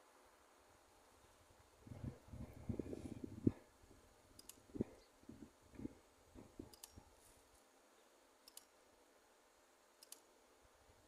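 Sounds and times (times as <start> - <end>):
faint short clicks: 4.4 - 4.6, 6.7 - 7.0, 8.4 - 8.7, 10.0 - 10.3.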